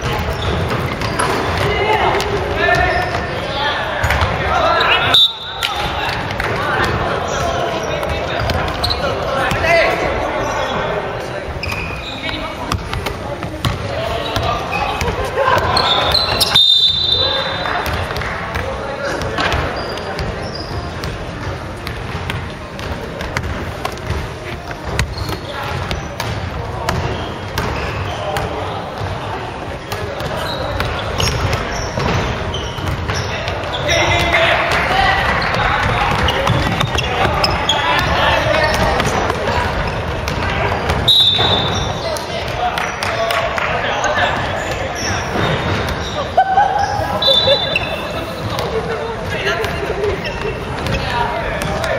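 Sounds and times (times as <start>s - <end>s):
voices calling out: 0.0s - 21.0s, 24.4s - 51.9s
shoes on court: 0.0s - 51.9s
basketball bouncing on wooden floor: 24.8s - 29.1s, 35.5s - 41.8s.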